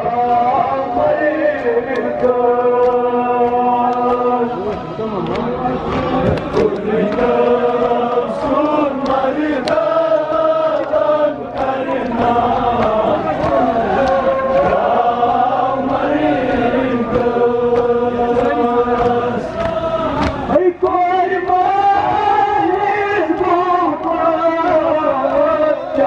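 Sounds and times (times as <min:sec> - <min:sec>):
men chanting through loudspeaker: 0:00.0 - 0:26.0
mourners' voices joining in: 0:00.0 - 0:26.0
chest-beating slaps: 0:17.0 - 0:21.6.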